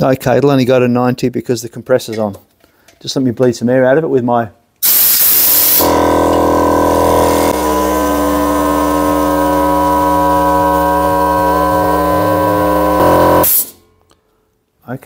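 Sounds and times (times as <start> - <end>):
hiss of released air: 4.8 - 5.9
air compressor running: 4.8 - 13.8.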